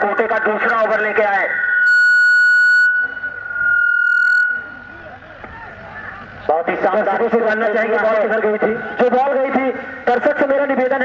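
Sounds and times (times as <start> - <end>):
high-pitched electronic tone: 0.0 - 5.4
faint background voices: 4.6 - 6.8.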